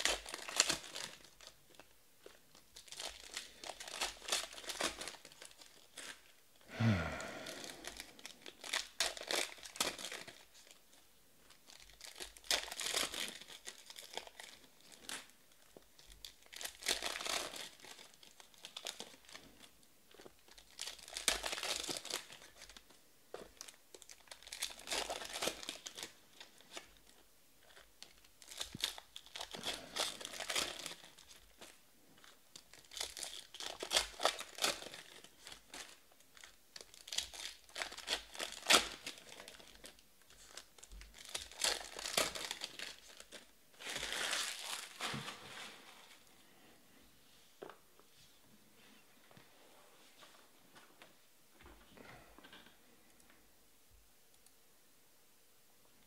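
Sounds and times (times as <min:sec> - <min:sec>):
card pack wrappers tearing and crinkling: 0:00.0 - 0:06.4, 0:07.3 - 0:10.8, 0:11.5 - 0:46.3.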